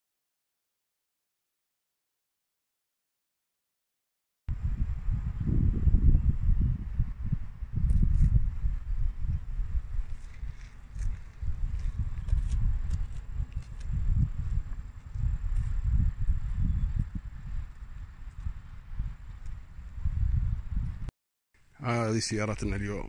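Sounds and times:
wind buffeting microphone: 4.5s - 21.1s.

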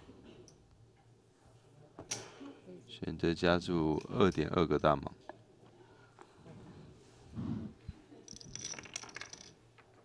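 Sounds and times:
poker chips clicking: 8.3s - 9.6s.

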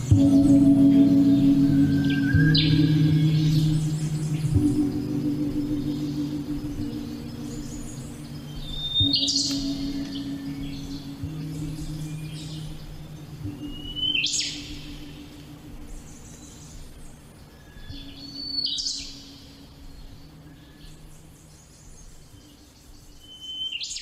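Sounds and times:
faint low drone: 0.0s - 23.3s.

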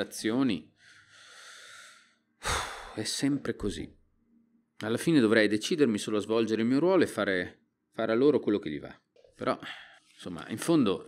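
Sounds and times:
man breathing in sharply: 0.8s - 3.0s
man breathing out: 0.8s - 3.0s.

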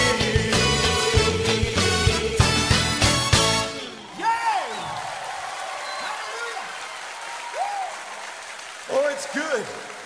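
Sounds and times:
congregation applauding: 3.7s - 10.0s.

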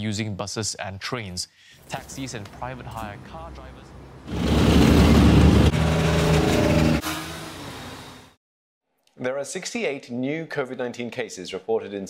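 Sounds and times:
heavy vehicle engines passing: 1.9s - 8.3s.

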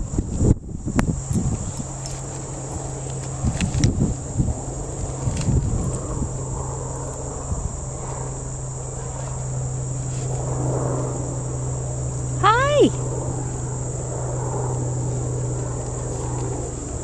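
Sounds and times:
insects chirring: 0.0s - 17.0s
low steady hum: 0.0s - 17.0s
person calling: 12.4s - 13.0s.

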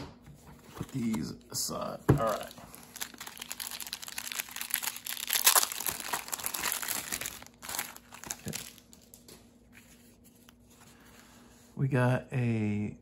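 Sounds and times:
cards handling: 0.6s - 10.9s
plastic wrapping crinkling: 2.2s - 9.4s.

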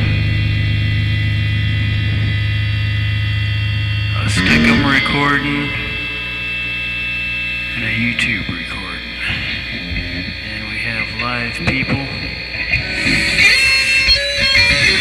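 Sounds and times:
electrical mains hum: 0.0s - 15.0s
music bursts: 4.1s - 8.1s
held high tone: 4.2s - 7.2s.

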